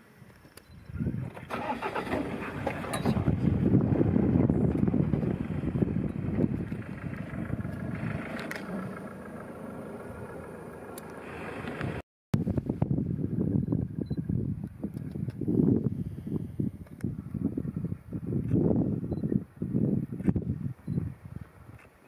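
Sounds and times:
truck engine starting and running: 0.7 - 12.0.

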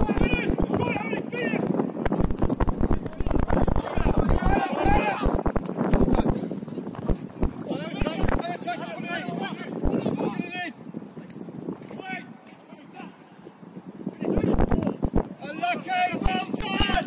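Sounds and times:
thumps on microphone: 2.0 - 6.4, 14.5 - 15.3
distant people shouting: 3.8 - 5.4.

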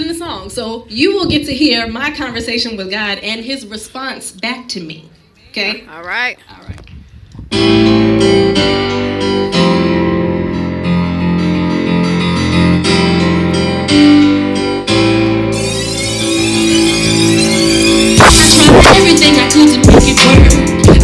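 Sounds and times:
piano-like keyboard chords: 7.5 - 21.0
rising sweep: 15.4 - 19.2.

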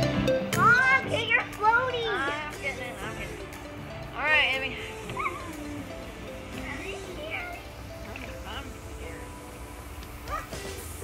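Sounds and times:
background music: 0.0 - 11.0
child squealing: 5.1 - 5.6, 10.2 - 10.8
child yelping: 5.1 - 5.6, 10.2 - 10.8.

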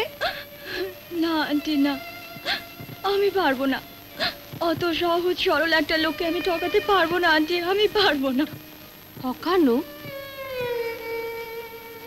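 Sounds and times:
woman whimpering and crying: 0.0 - 1.0.

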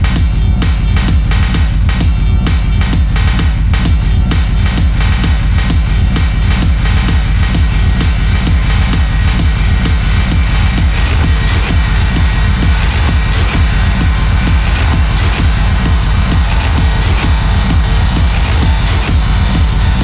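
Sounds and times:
industrial techno with heavy bass: 0.0 - 20.0.

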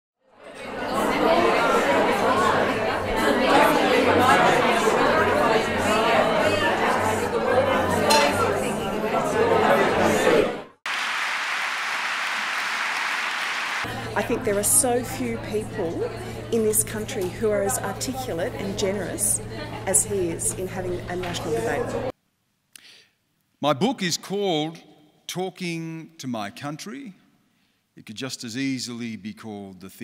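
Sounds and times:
crowd chatter in a hall: 0.3 - 10.8, 13.8 - 22.1.

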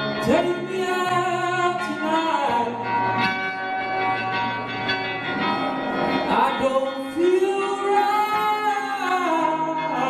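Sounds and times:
person singing: 0.0 - 3.5, 6.0 - 10.0
acoustic guitar strumming: 0.0 - 10.0.

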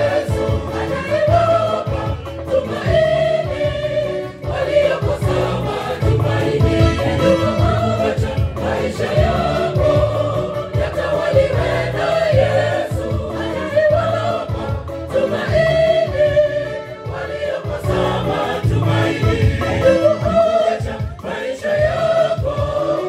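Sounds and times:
gospel choir singing: 0.0 - 23.0.

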